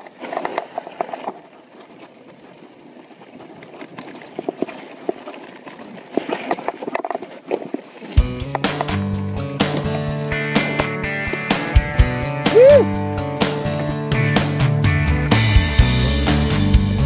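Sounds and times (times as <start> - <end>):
tyres crunching over dirt: 0.0 - 12.4.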